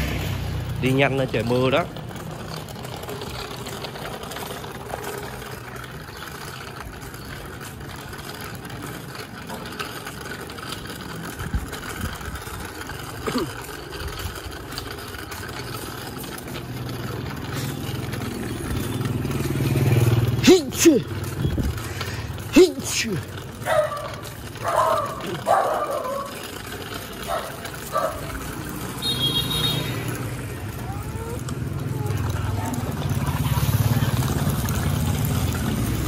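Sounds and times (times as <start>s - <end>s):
vehicle engine running: 0.0s - 36.0s.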